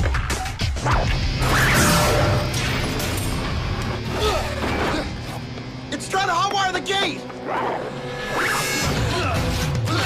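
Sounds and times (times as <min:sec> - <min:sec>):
action music with low pulse: 0:00.0 - 0:10.0.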